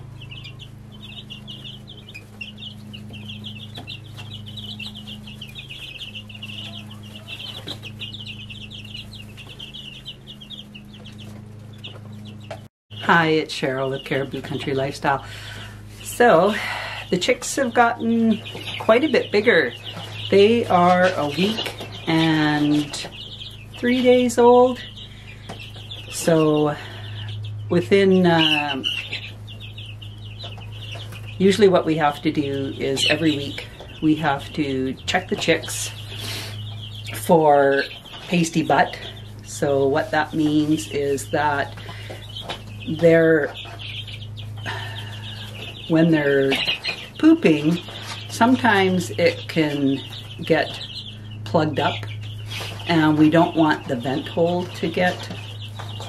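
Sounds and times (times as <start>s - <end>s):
chicks peeping: 0.0s - 56.0s
steady low hum: 0.0s - 56.0s.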